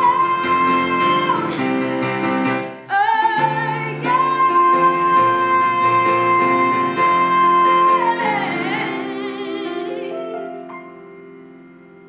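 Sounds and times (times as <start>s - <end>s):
woman singing: 0.0s - 11.1s
piano accompaniment: 0.0s - 12.0s.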